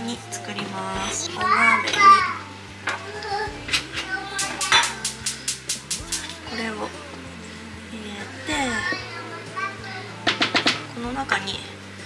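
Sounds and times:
light background music: 0:00.0 - 0:12.0.

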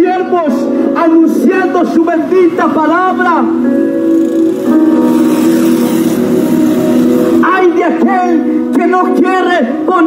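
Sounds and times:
sustained chord through horn loudspeakers: 0:01.4 - 0:08.7.

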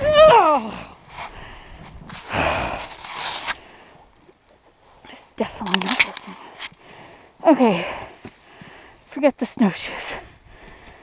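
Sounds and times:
heavy straining breath: 0:00.6 - 0:04.1.

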